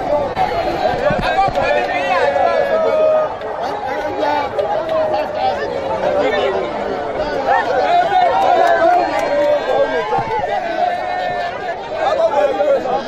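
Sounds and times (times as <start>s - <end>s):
overlapping voices and chatter: 0.0s - 13.0s.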